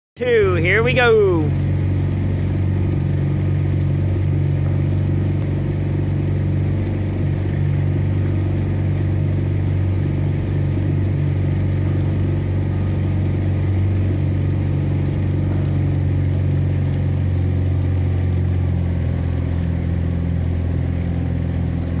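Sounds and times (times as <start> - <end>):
outboard motor droning: 0.2 - 22.0.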